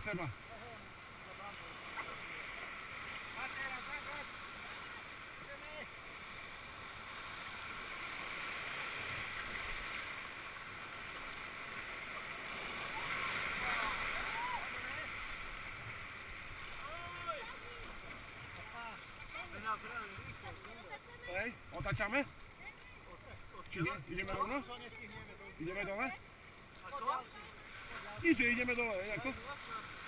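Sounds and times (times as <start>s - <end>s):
whitewater rushing and churning: 0.0s - 30.0s.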